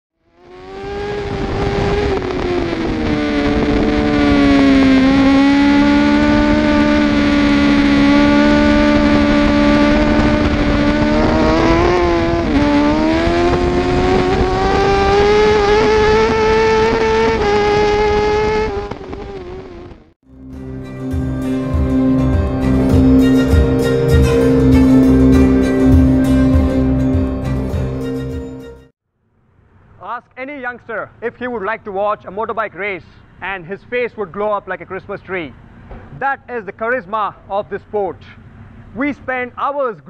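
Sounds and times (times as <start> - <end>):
racing motorcycle engine revving: 0.2 - 28.9.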